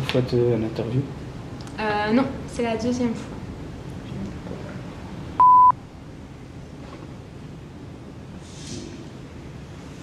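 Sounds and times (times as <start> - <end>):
faint room hiss: 0.0 - 10.0
short electronic beep: 5.4 - 5.8.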